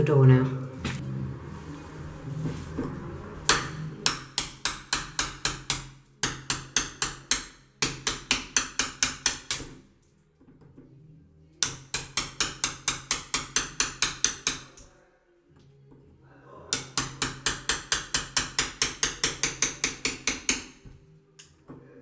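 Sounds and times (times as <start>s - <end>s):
hammer tapping a blade: 3.5s - 9.8s, 11.6s - 14.9s, 16.7s - 21.5s.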